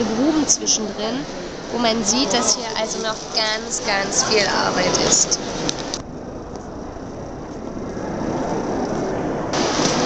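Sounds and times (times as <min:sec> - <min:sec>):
rumble of crowded hall: 0:00.0 - 0:10.0.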